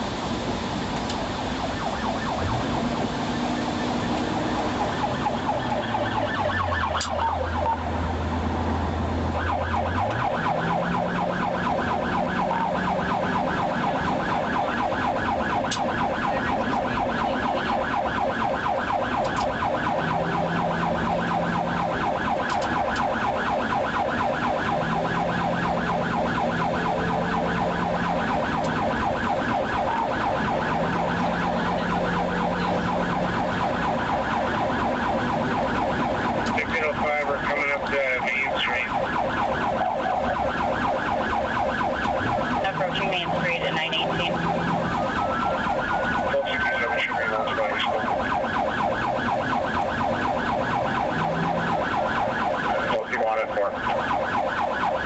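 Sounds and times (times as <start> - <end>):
police siren yelping: 1.1 - 55.0.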